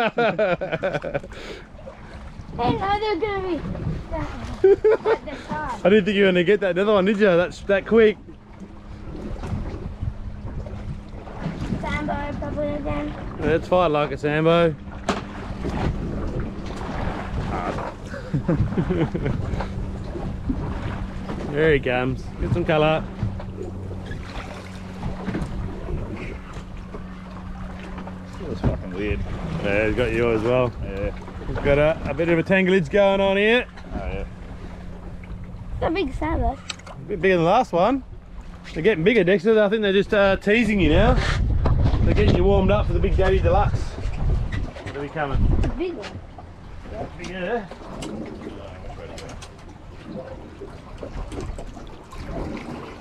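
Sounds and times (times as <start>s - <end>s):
steady low hum: 0.0s - 53.0s
water sloshing against boat hull: 0.0s - 53.0s
wind buffeting microphone: 1.7s - 39.0s, 39.9s - 53.0s.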